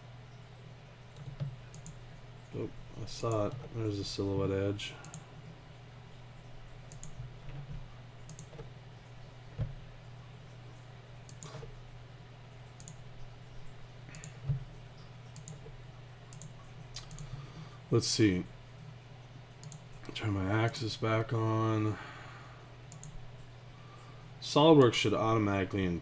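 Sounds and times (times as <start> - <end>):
computer mouse clicks: 1.1 - 2.0, 5.0 - 5.2, 6.9 - 8.7, 11.3 - 11.7, 12.7 - 13.0, 14.1 - 15.7, 16.3 - 17.4, 19.6 - 19.9, 22.9 - 23.2.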